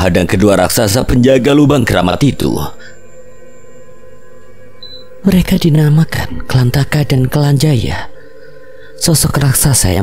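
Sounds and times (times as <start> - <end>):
ambient drone music: 0.0 - 10.0.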